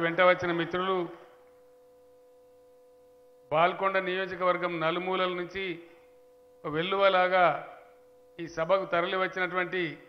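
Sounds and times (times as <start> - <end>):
man speaking over loudspeaker: 0.0 - 1.2, 3.5 - 5.8, 6.7 - 7.8, 8.4 - 10.0
faint steady hum: 0.0 - 10.0.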